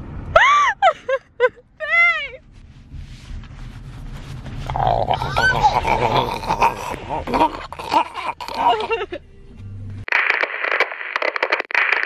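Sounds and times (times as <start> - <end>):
crackling radio static: 10.1 - 12.0.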